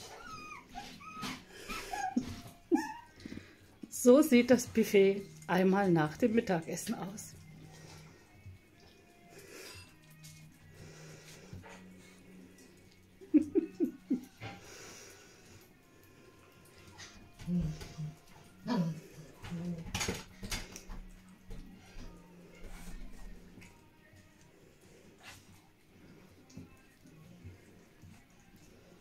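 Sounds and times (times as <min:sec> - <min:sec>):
puppy whimper: 0:00.0 - 0:03.5
scuffles and clicks around bowls: 0:00.0 - 0:13.2, 0:16.4 - 0:29.0
puppies eating from steel bowls: 0:00.0 - 0:29.0.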